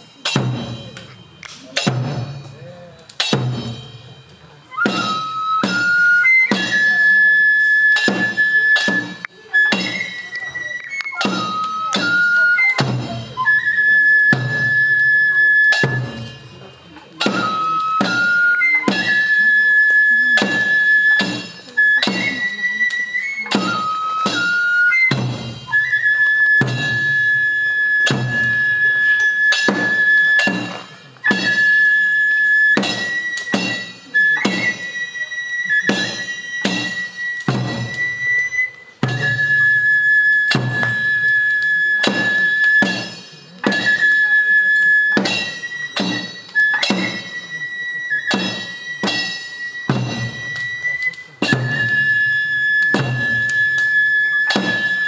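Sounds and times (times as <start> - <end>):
small drum: 0.2 - 4.1, 4.8 - 6.9, 8.0 - 10.2, 11.0 - 13.4, 14.3 - 16.5, 17.2 - 19.4, 20.4 - 22.5, 23.5 - 27.4, 28.0 - 31.8, 32.7 - 34.9, 35.9 - 38.3, 39.0 - 39.9, 40.5 - 44.1, 45.2 - 47.4, 48.3 - 50.5, 51.4 - 53.8
large barrel drum strikes: 1.8 - 4.0
transverse flute long notes: 4.7 - 16.3, 17.3 - 30.6, 31.2 - 42.9, 43.7 - 55.0.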